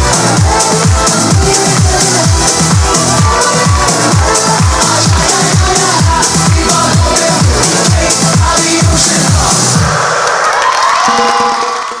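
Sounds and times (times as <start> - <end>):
audience cheering: 0.0 - 6.2, 9.9 - 12.0
electronic dance music: 0.0 - 12.0.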